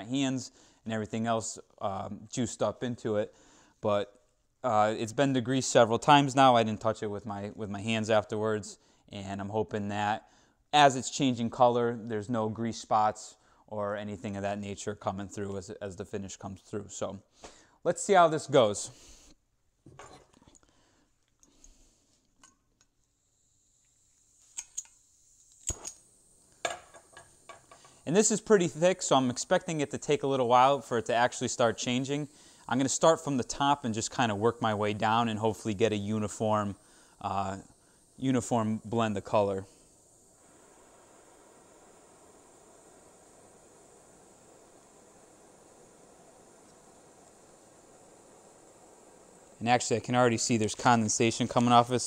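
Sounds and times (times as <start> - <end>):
flame hissing softly: 0.2 - 19.4, 20.2 - 52.0
gas hissing: 23.1 - 52.0
torch igniter clicks: 23.8 - 28.0, 36.6 - 52.0.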